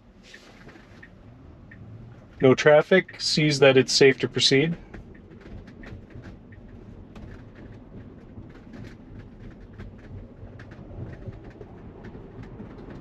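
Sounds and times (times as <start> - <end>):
road and tyre rumble: 0.0 - 13.0.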